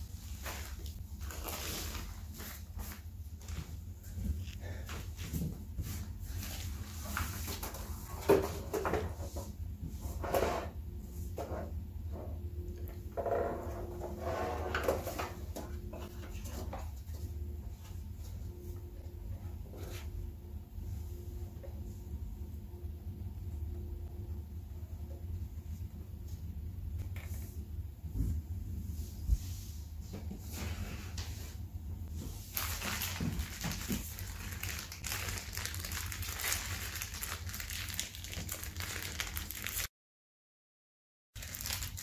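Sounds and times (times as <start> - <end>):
foam wrapping rustling and crinkling: 0.0 - 4.8, 32.1 - 39.9, 41.4 - 42.0
steady low hum: 0.0 - 32.7.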